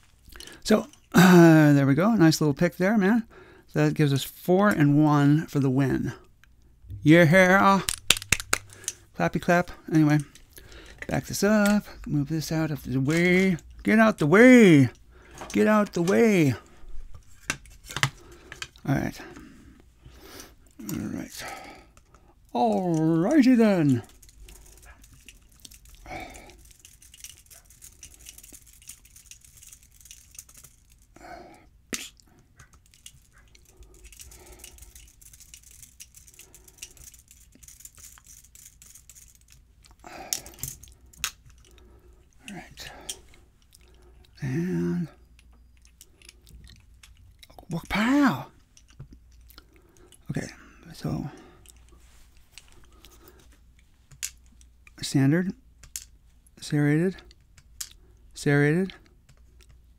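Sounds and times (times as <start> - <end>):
low steady hum: 0.0 - 58.4
metal clicks and rattles: 7.5 - 9.1, 22.0 - 31.1, 32.6 - 41.8.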